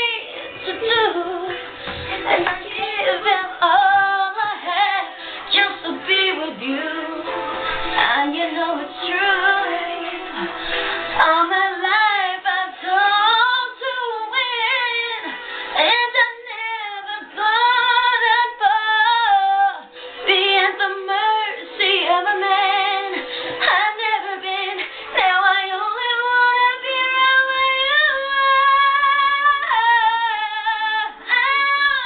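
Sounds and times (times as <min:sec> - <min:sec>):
woman singing with vibrato: 0:00.0 - 0:32.0.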